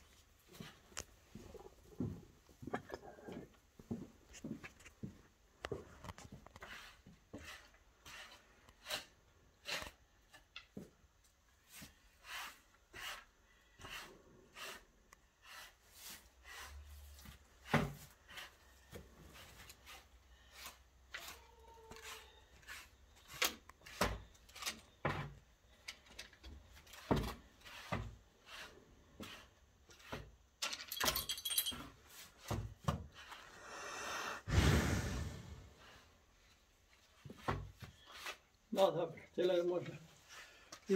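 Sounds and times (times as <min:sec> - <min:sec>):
metal neck chain clinking: 0:30.6 - 0:31.9
cow breathing out: 0:33.4 - 0:36.2.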